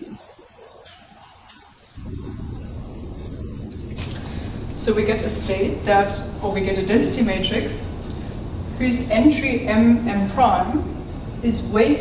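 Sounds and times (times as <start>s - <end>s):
low steady rumble: 1.9s - 12.0s.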